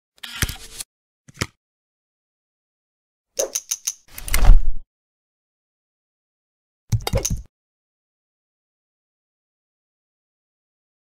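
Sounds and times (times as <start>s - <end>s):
mechanical clicks and knocks: 6.9s - 7.5s.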